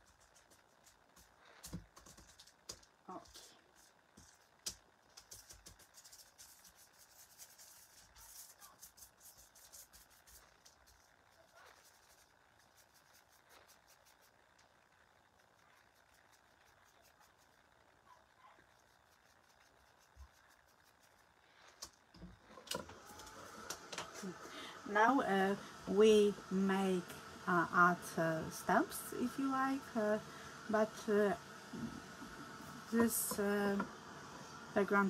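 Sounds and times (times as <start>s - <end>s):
paintbrush ticking and scratching: 0.0s - 22.2s.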